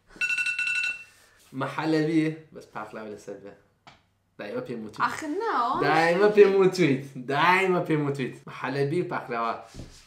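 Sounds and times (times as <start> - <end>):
electronic alarm beep: 0.1 - 1.2
voice: 4.4 - 9.6.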